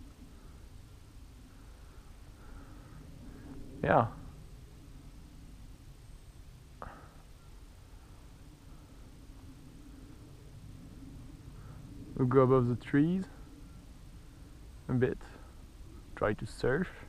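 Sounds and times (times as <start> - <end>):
faint steady hum: 0.0 - 17.0
low rumble: 0.0 - 17.0.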